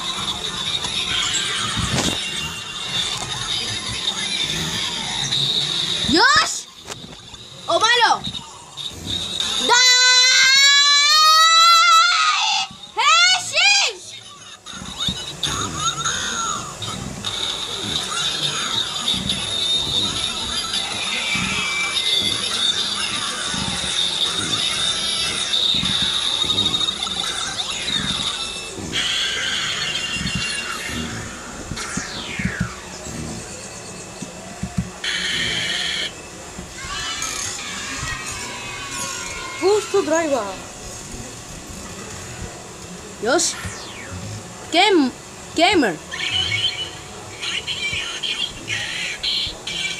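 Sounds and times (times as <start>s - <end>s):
television music: 0.0s - 49.9s
television sound effects: 0.0s - 49.9s
voices from television: 0.0s - 49.9s.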